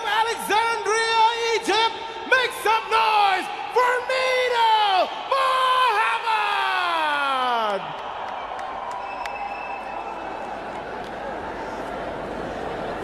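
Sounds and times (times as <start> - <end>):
crowd cheering: 0.0 - 13.0.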